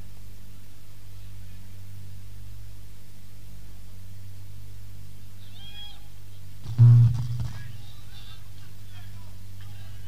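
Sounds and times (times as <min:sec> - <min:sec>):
tape hiss: 0:00.0 - 0:09.6
mains hum: 0:00.0 - 0:10.0
low plucked note: 0:06.7 - 0:07.8.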